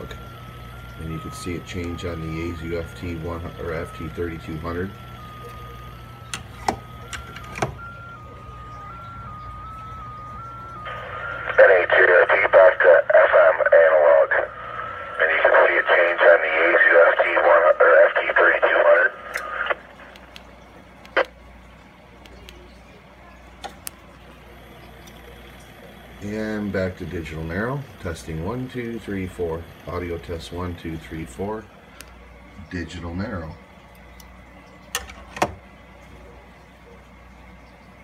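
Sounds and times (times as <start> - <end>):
narrow-band speech over radio speaker: 0.9 - 5.0, 10.8 - 20.2, 26.2 - 31.7
radio clicks: 15.1 - 21.4.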